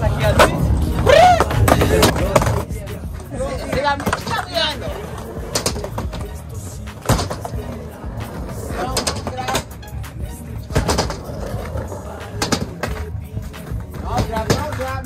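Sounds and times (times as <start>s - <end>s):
music with low beat: 0.0s - 15.0s
skateboards clacking on concrete: 0.0s - 15.0s.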